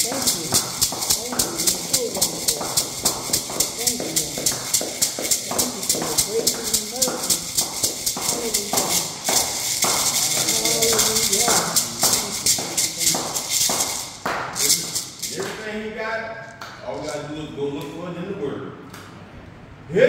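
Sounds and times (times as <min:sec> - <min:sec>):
beaded gourd shaker rattling: 0:00.0 - 0:15.6
hand claps: 0:00.0 - 0:15.7
people singing: 0:09.6 - 0:13.1.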